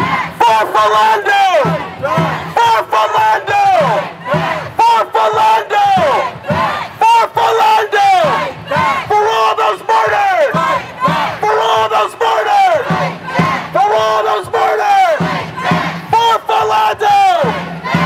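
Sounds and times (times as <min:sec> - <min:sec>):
crowd chanting in unison: 0:00.0 - 0:18.0.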